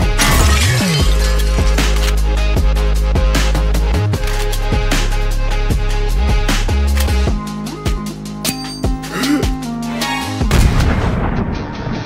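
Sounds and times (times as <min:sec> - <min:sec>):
background music: 0:00.0 - 0:12.0
deep rumbling boom: 0:10.5 - 0:11.7.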